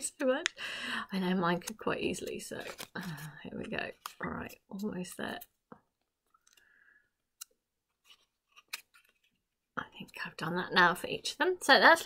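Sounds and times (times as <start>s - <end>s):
paper crinkling and clicking: 1.6s - 5.2s, 7.4s - 9.4s.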